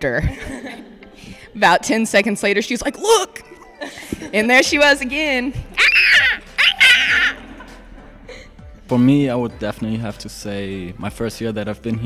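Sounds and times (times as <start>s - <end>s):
young women laughing: 0.1s - 1.0s, 5.8s - 8.0s
high-pitched squeals of laughter: 5.8s - 7.6s.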